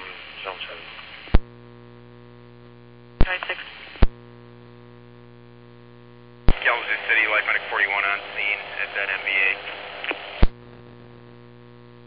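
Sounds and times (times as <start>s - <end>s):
voice over radio: 0.0s - 1.0s, 3.2s - 3.8s, 6.5s - 10.3s
radio transmission clicks: 0.0s - 5.5s, 6.3s - 12.0s
open radio channel hum: 0.0s - 12.0s.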